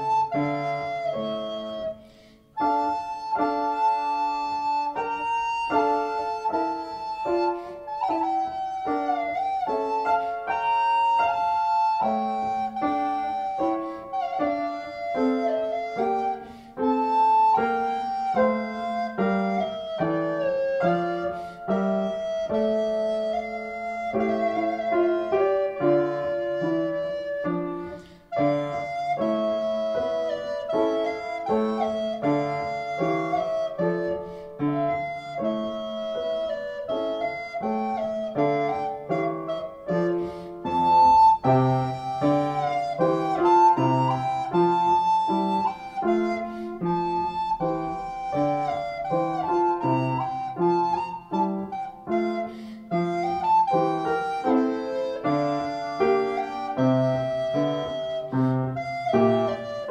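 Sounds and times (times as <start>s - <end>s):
alto recorder melody: 0.0s - 59.9s
piano accompaniment: 0.0s - 59.9s.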